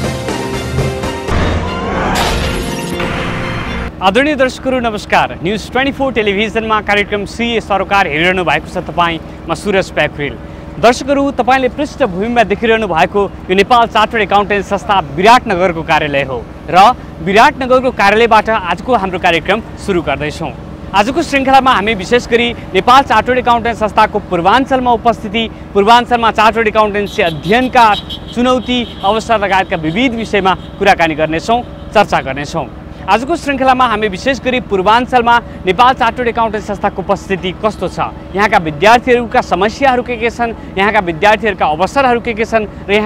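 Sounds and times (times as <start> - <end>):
street noise: 0.0 - 43.0
man speaking: 3.9 - 43.0
man talking: 3.9 - 43.0.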